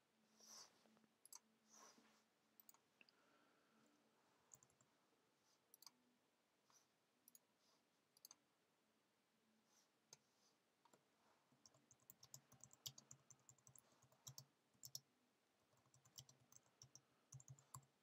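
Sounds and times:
faint keyboard typing: 0:01.2 - 0:01.5, 0:02.6 - 0:03.2, 0:04.5 - 0:04.9, 0:05.7 - 0:06.0, 0:08.1 - 0:08.4, 0:11.6 - 0:15.1, 0:15.7 - 0:18.0.

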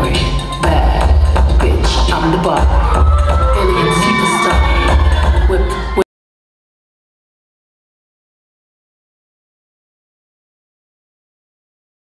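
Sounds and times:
dance music with heavy bass: 0:00.0 - 0:06.0
audience cheering and screaming: 0:02.5 - 0:06.1.

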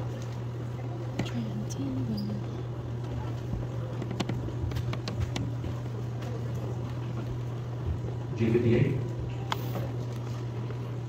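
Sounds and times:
steady low hum: 0:00.0 - 0:11.0
faint clicks and knocks: 0:03.0 - 0:08.2.

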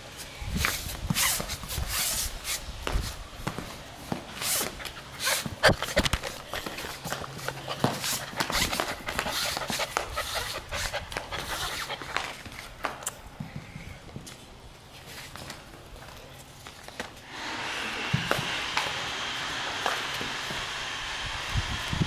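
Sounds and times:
puppy paws on tiled floor: 0:00.1 - 0:17.3, 0:19.8 - 0:20.6.

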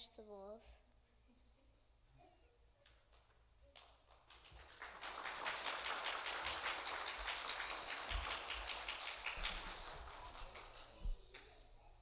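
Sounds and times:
audience applauding: 0:03.8 - 0:11.5.

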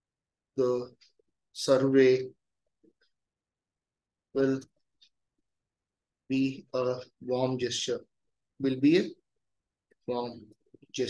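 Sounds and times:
man speaking: 0:00.6 - 0:01.0, 0:01.6 - 0:02.4, 0:04.4 - 0:04.8, 0:06.3 - 0:09.2, 0:10.0 - 0:11.0.

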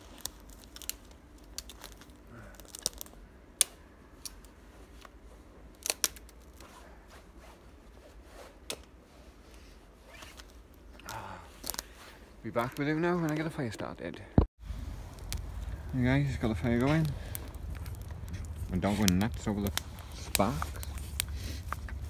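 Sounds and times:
twigs snapping: 0:00.0 - 0:06.6, 0:10.4 - 0:12.0, 0:14.8 - 0:22.0
rustling of branches: 0:00.0 - 0:13.7, 0:14.6 - 0:22.0.

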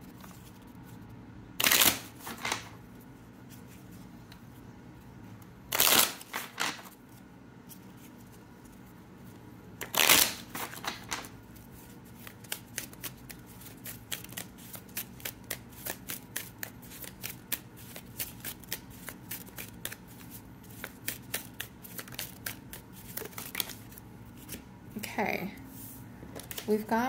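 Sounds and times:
cards being shuffled: 0:01.6 - 0:02.8, 0:05.7 - 0:07.0, 0:09.8 - 0:24.6.

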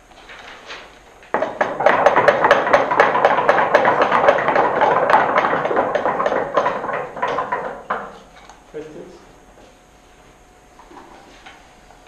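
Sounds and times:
knocking on wooden desks: 0:01.3 - 0:08.3.

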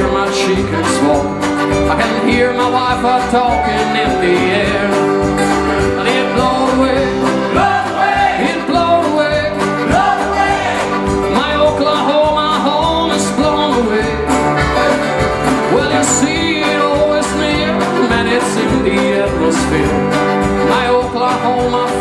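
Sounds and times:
country band playing: 0:00.0 - 0:22.0.

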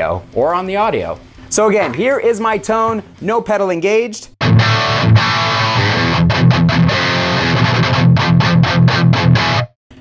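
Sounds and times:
distorted electric guitar chugs: 0:04.4 - 0:10.0.

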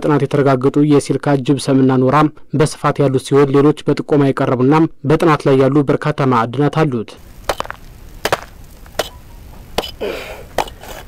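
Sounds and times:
rock being struck: 0:07.2 - 0:09.2, 0:09.8 - 0:10.8.

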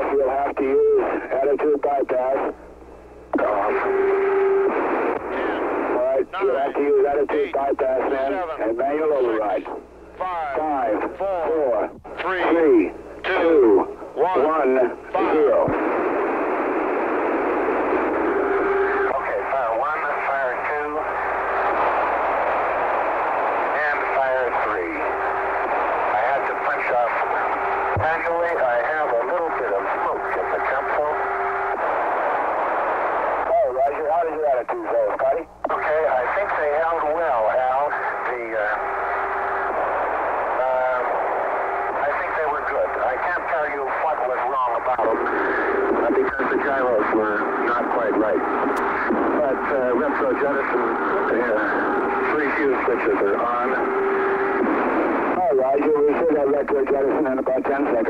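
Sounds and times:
garbled radio voices: 0:00.0 - 0:58.0
radio static hiss: 0:00.0 - 0:58.0
steady tone: 0:12.1 - 0:33.6, 0:35.7 - 0:56.9.

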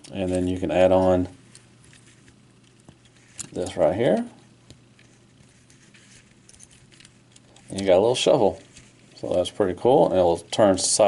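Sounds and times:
plastic toy parts clicking: 0:00.0 - 0:03.8, 0:05.0 - 0:07.9.

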